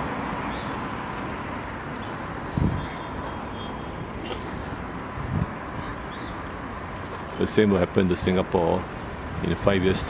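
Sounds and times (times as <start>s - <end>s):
passing cars: 0.0s - 10.0s.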